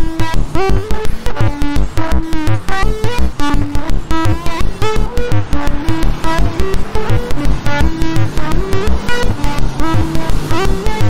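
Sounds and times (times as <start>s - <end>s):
electronic synth music: 0.0s - 11.0s.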